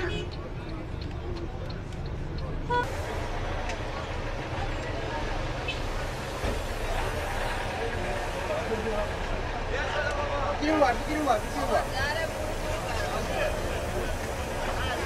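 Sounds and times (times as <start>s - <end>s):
people talking: 0.0s - 15.0s
traffic rumble: 0.0s - 15.0s.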